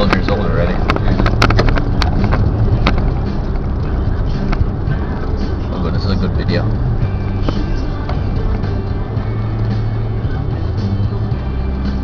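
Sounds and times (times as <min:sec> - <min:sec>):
car engine and road noise: 0:00.0 - 0:12.0
music playing: 0:00.0 - 0:12.0.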